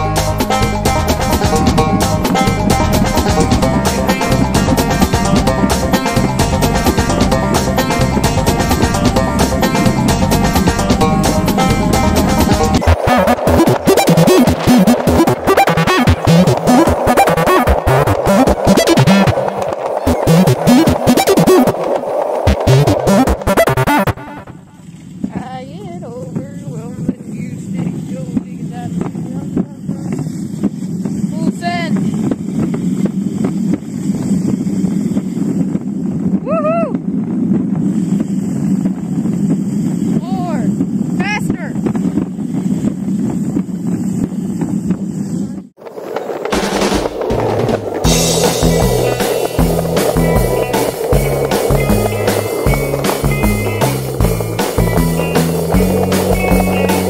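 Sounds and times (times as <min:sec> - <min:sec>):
background music: 0:00.0 - 0:21.7, 0:47.3 - 0:57.0
wind on microphone: 0:00.0 - 0:57.0
high rising squeaks: 0:00.1 - 0:25.3, 0:45.4 - 0:57.0
small motor droning: 0:46.0 - 0:57.0.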